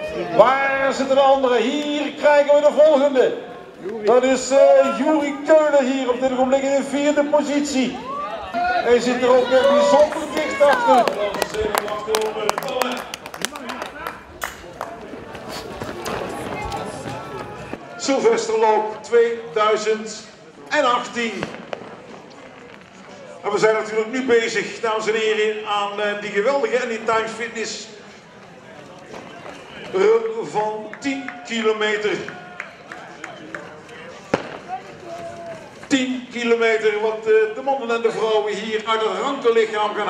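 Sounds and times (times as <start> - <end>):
faint voices of spectators: 0.0 - 24.9, 27.1 - 40.0
faint background voices: 8.3 - 18.0
spectators clapping: 9.5 - 15.9, 30.9 - 34.8
firecracker bang: 14.4 - 17.9, 21.2 - 23.4, 34.3 - 35.9.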